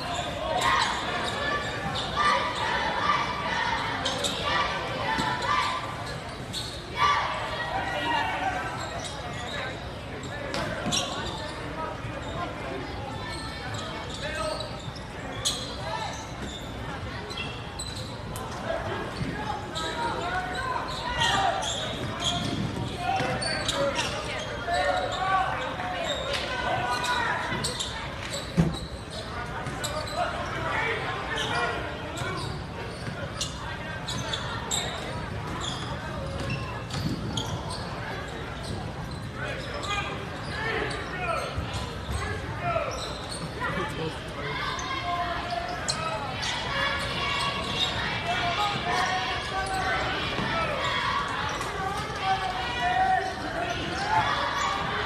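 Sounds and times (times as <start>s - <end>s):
indistinct crowd chatter: 0.0s - 55.0s.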